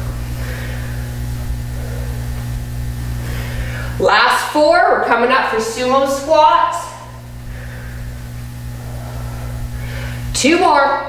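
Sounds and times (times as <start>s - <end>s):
low uneven rumble: 0.0s - 11.0s
steady electrical hum: 0.0s - 11.0s.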